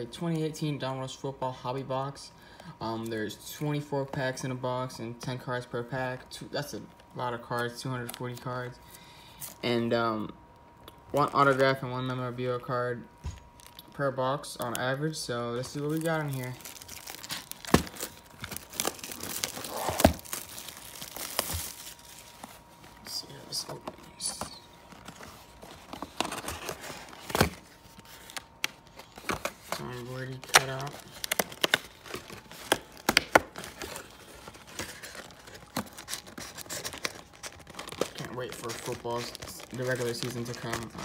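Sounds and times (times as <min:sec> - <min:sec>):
foil packs rustling: 0:14.8 - 0:41.0
cardboard tearing and crinkling: 0:15.7 - 0:23.0, 0:25.0 - 0:41.0.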